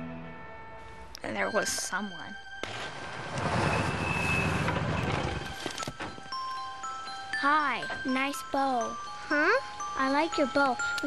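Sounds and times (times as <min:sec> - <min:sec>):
vehicle rumble: 0:02.8 - 0:05.9.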